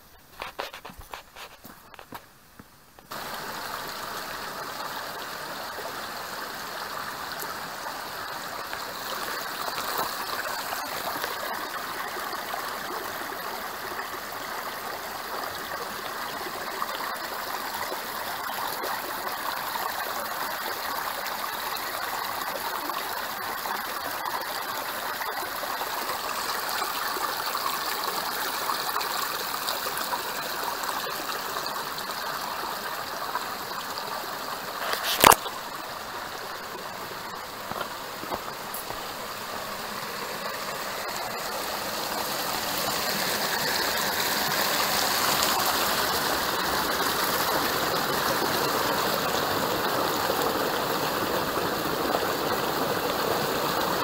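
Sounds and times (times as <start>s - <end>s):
water running over stones: 0.1s - 2.3s, 3.0s - 54.0s.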